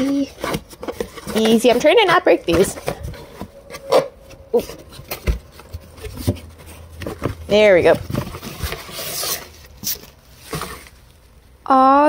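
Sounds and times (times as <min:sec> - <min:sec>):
stems scraping cardboard: 0:00.0 - 0:11.2.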